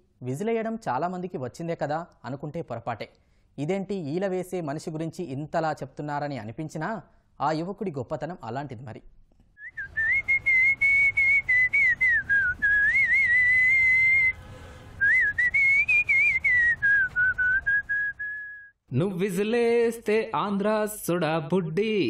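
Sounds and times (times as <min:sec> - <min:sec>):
man whistling a melody: 0:09.6 - 0:14.4, 0:15.0 - 0:18.8.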